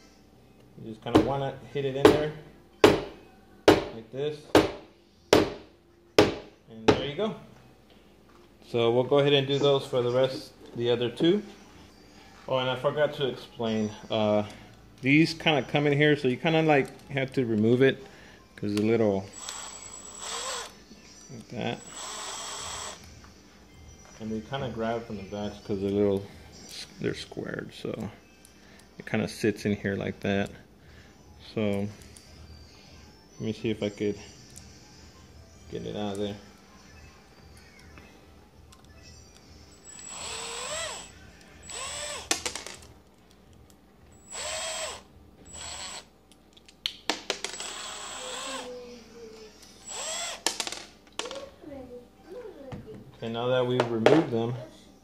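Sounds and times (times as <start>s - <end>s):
cordless drill whining: 19.3s - 20.8s, 21.8s - 23.1s, 39.8s - 42.3s, 44.2s - 46.1s, 47.5s - 48.8s, 49.8s - 50.4s.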